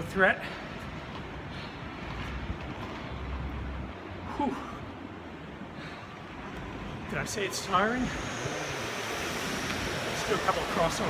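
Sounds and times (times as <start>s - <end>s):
skate wheels rolling on concrete: 0.4s - 4.2s.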